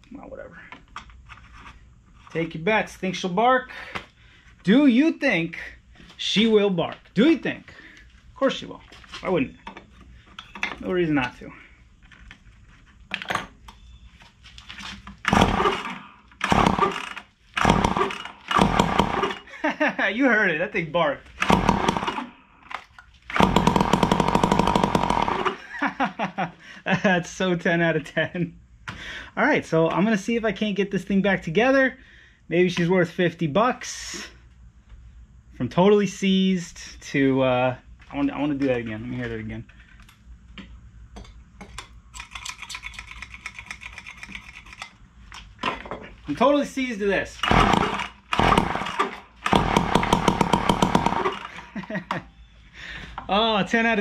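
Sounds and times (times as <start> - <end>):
string trimmer engine barking: 23.4 - 25.8, 47.5 - 51.7.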